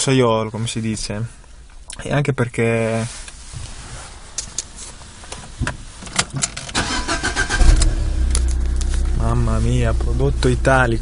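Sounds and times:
car starter cranking: 0:06.2 - 0:09.5
car engine idling: 0:06.8 - 0:11.0.

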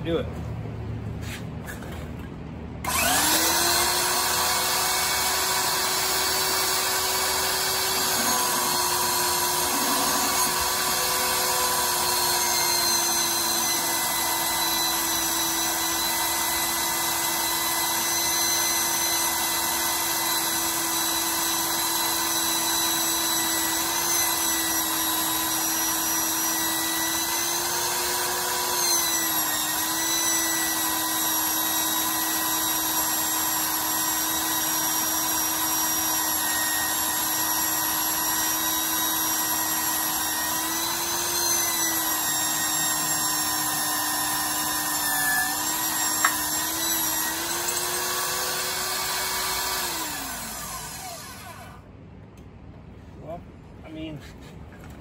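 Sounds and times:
drill press motor drilling steel: 0:02.8 - 0:51.8.

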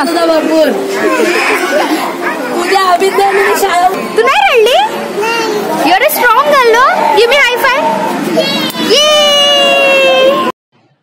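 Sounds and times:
young children talking and calling: 0:00.0 - 0:10.5.

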